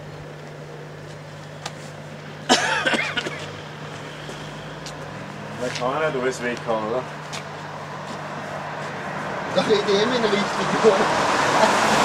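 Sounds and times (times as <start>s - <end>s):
faint footsteps on asphalt: 0.0s - 2.5s, 3.1s - 10.3s
hum of motor vehicles: 0.0s - 12.0s.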